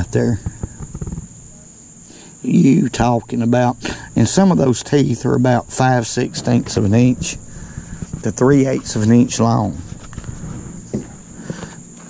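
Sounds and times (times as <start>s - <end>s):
high drone of insects: 0.0s - 12.0s
faint handling knocks and rustling: 4.4s - 12.0s.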